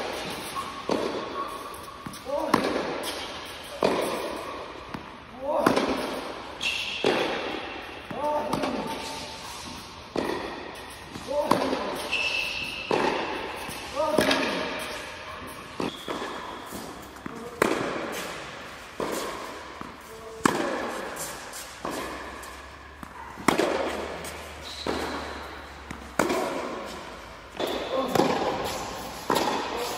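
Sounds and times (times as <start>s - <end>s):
tennis shoes squeaking: 0.0s - 5.2s, 6.0s - 29.9s
tennis ball hits and bounces: 0.0s - 29.9s.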